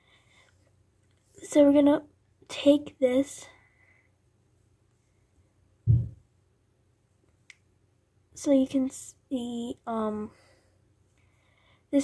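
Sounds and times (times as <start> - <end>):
dull handling thump: 5.9 - 6.2.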